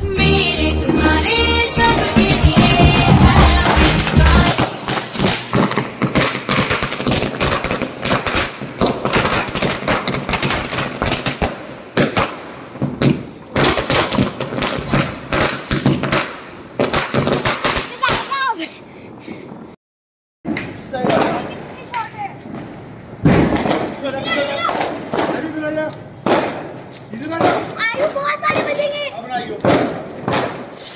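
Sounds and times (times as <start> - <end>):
firecrackers rattling bangs: 1.9 - 18.6, 20.5 - 30.9.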